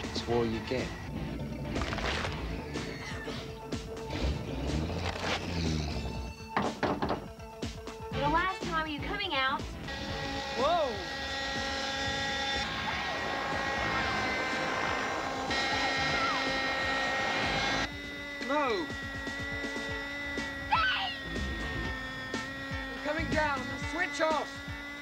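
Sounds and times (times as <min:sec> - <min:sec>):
model helicopter engine buzzing: 0:00.0 - 0:06.4, 0:08.2 - 0:25.0
synth music: 0:09.6 - 0:25.0.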